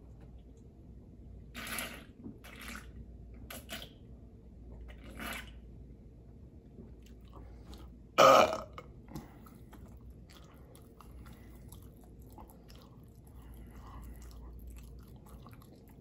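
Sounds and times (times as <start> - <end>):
man burping loudly: 8.2 - 8.9.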